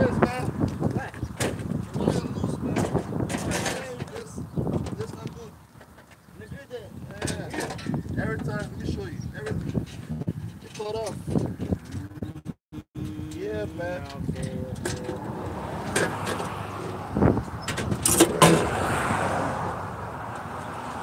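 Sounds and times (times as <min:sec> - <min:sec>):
low talk: 0:01.9 - 0:05.6, 0:06.4 - 0:09.8, 0:13.0 - 0:15.3
sharp metallic knocks: 0:17.6 - 0:18.8.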